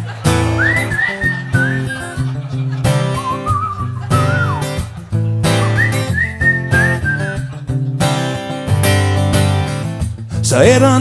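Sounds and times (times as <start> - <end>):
acoustic guitar strumming: 0.0 - 11.0
person whistling a melody: 0.3 - 7.8.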